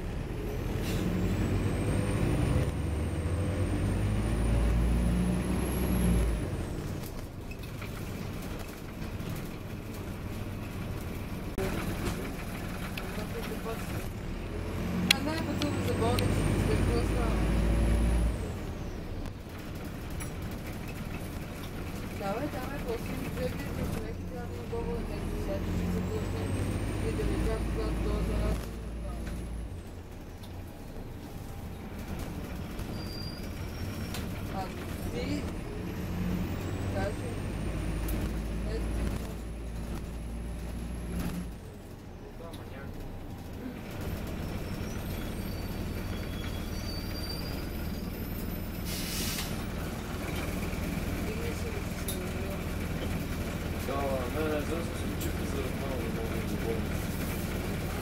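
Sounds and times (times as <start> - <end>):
bus engine rumble: 0.0 - 58.0.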